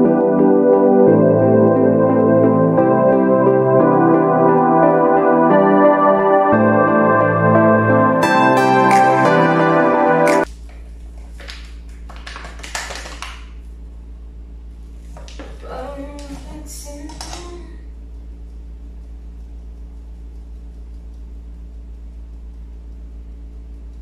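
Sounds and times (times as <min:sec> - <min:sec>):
steady low hum: 0:00.0 - 0:12.1, 0:13.5 - 0:24.0.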